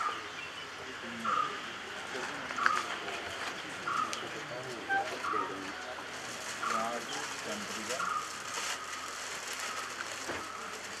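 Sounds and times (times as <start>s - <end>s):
low voices murmuring: 0.0s - 11.0s.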